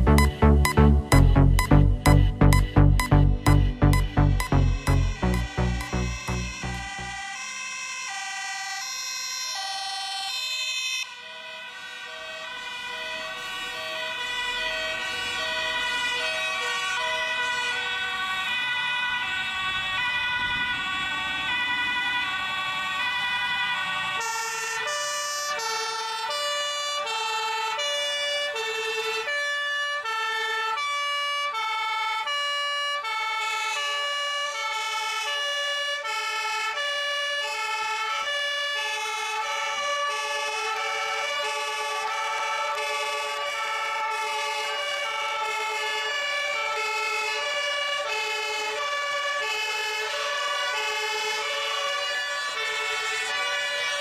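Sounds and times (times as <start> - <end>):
two-tone fire engine sirens: 0.0 - 54.0.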